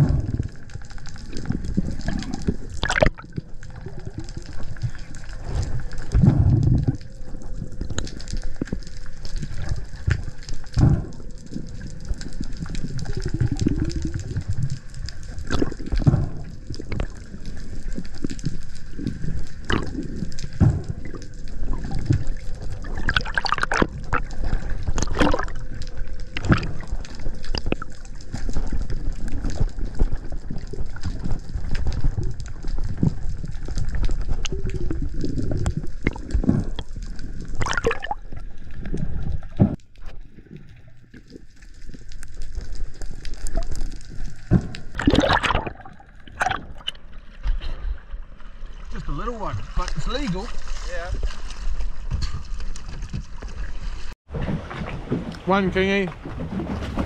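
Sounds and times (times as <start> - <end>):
muffled underwater water rush: 0.0 - 57.0.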